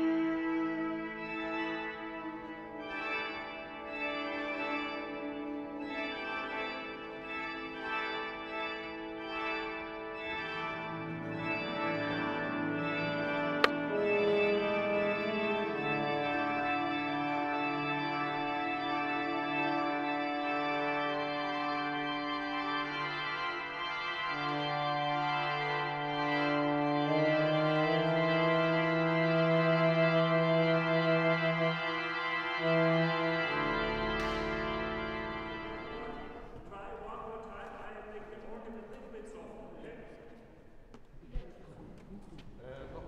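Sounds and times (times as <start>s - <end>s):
organ playing held chords: 0.0s - 36.6s.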